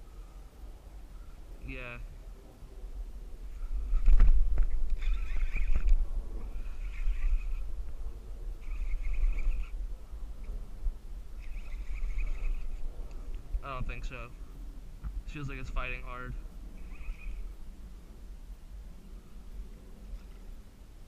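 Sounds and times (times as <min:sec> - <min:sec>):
wind rumble on microphone: 0:00.0 - 0:21.0
fishing reel buzzing: 0:04.9 - 0:07.7, 0:08.6 - 0:09.8, 0:11.4 - 0:12.9, 0:16.7 - 0:17.5.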